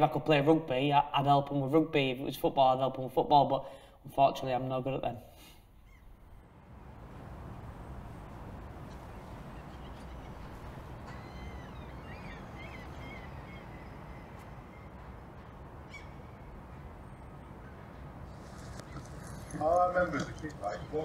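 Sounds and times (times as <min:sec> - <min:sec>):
birds calling: 0:05.7 - 0:21.0
low outdoor rumble: 0:06.1 - 0:21.0.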